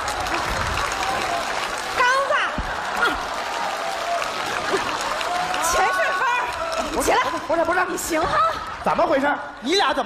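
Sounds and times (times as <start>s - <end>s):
studio audience applauding: 0.0s - 8.2s.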